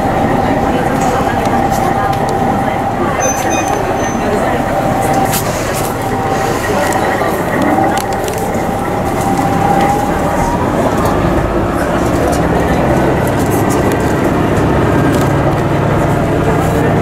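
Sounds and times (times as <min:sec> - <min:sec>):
passengers murmuring: 0:00.0 - 0:17.0
train cabin noise: 0:00.0 - 0:17.0.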